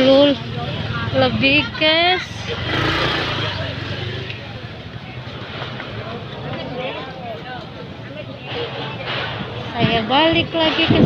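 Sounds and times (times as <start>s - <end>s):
loud rush of noise: 0.0s - 11.0s
motorbike engines passing: 0.0s - 11.0s.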